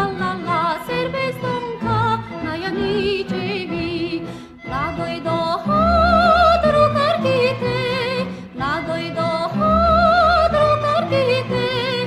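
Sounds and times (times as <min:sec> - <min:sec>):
instrumental accompaniment: 0:00.0 - 0:12.0
woman singing with vibrato: 0:00.0 - 0:12.0.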